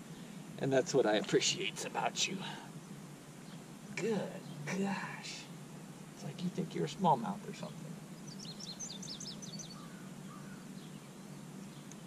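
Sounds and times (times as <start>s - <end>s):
low steady hum: 0.0s - 12.0s
outdoor background noise: 0.0s - 12.0s
bird chirping: 2.8s - 5.2s, 6.6s - 12.0s.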